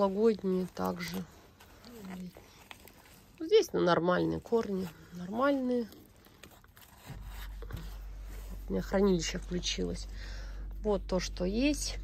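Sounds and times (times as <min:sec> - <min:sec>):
steady low equipment hum: 0:00.0 - 0:12.0.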